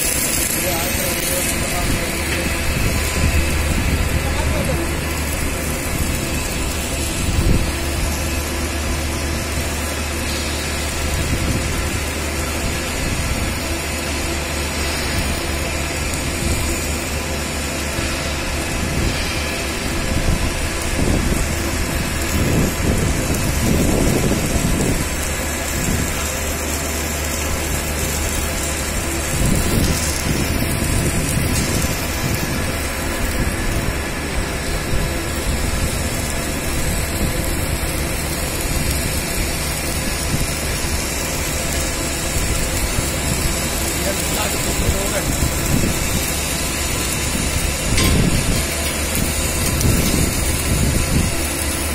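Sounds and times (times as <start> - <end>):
low electrical hum: 0.0 - 51.9
welding hiss: 0.0 - 51.9.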